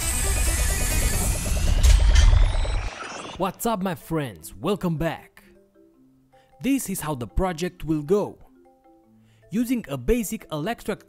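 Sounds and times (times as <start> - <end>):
music: 0.0 - 2.8, 3.4 - 11.0
deep rumble: 0.0 - 3.4
faint rising tone: 0.0 - 3.4.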